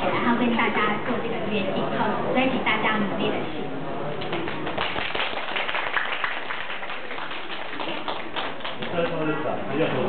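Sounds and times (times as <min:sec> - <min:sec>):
audience applause: 0:04.2 - 0:09.2.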